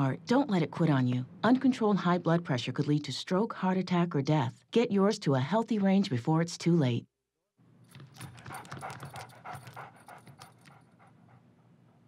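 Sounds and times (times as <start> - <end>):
dog panting: 8.0 - 12.0.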